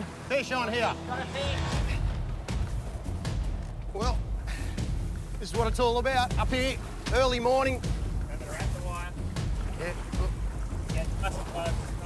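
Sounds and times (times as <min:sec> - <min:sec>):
boat motor rumble: 0:00.0 - 0:12.0
men's voices: 0:00.0 - 0:12.0
wind: 0:00.0 - 0:12.0.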